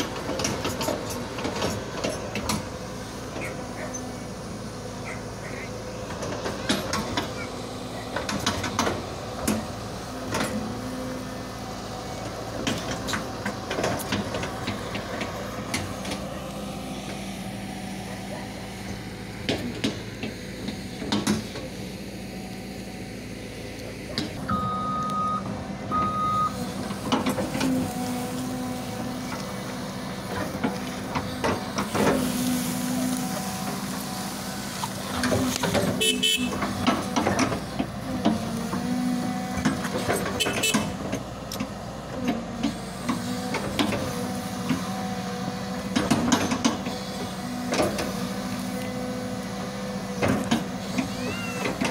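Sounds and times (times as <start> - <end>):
excavator diesel engine running: 0.0 - 51.9.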